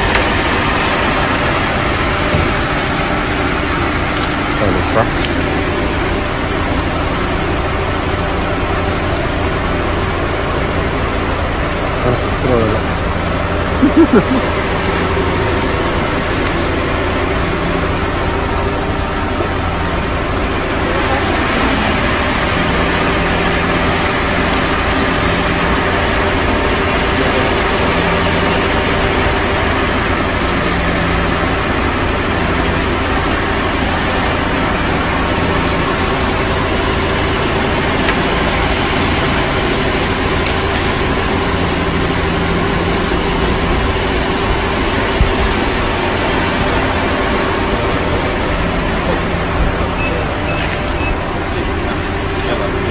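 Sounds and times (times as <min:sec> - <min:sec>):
low pulsing tone: 0:00.0 - 0:52.9
mechanical drone: 0:00.0 - 0:52.9.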